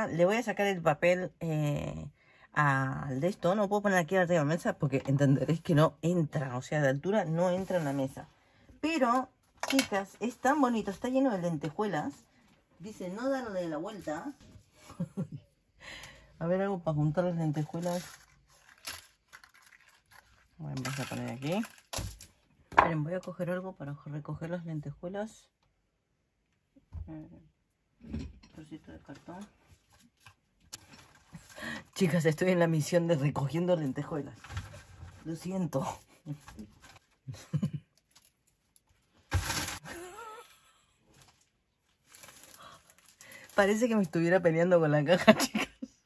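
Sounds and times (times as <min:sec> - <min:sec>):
paper and cardboard rustling: 0:17.5 - 0:22.3.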